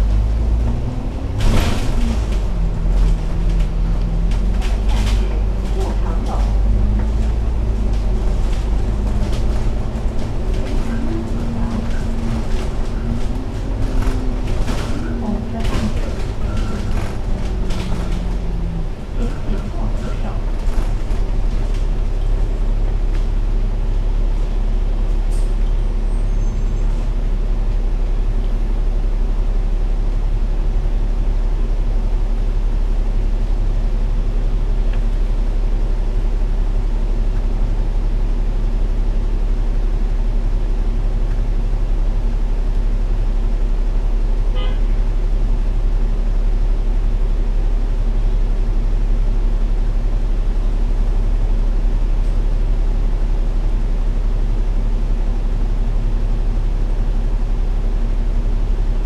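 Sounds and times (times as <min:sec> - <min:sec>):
bus diesel engine idling: 0:00.0 - 0:59.0.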